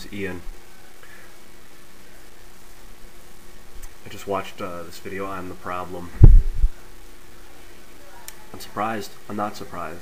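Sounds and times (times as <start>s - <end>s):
muffled thumps on microphone: 6.2s - 6.7s.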